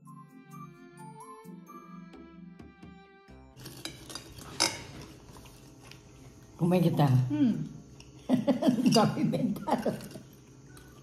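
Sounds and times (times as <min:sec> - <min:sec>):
light background music: 0:00.0 - 0:06.0.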